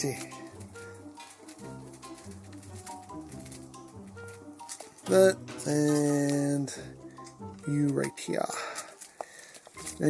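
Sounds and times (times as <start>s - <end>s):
soft ambient music: 0.0s - 10.0s.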